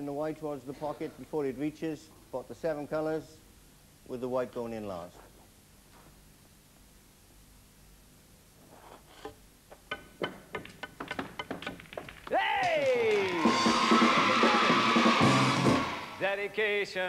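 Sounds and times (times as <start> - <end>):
snooker balls clicking: 9.7 - 13.2.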